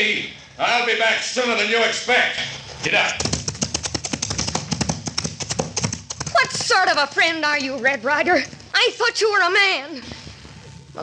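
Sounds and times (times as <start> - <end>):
horse hoofbeats galloping: 2.9 - 8.5.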